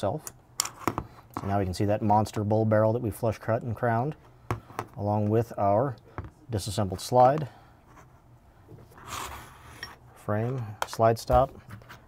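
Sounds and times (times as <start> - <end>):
soft scrape of metal parts: 7.8 - 10.7.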